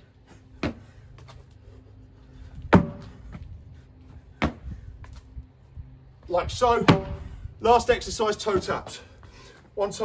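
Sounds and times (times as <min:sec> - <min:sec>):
tyre thuds: 0:02.7 - 0:03.2.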